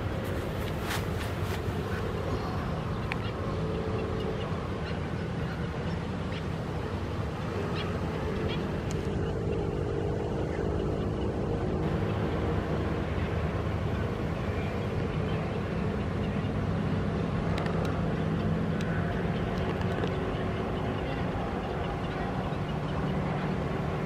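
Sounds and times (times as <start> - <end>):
low motor rumble: 0.0 - 24.0.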